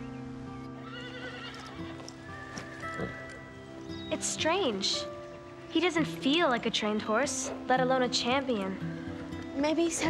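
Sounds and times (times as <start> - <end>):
background music of held notes: 0.0 - 10.0
horse whinnying: 0.8 - 3.5.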